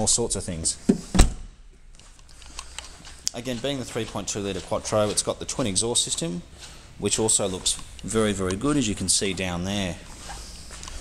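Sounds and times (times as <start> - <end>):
car boot lid thump: 0.9 - 1.4.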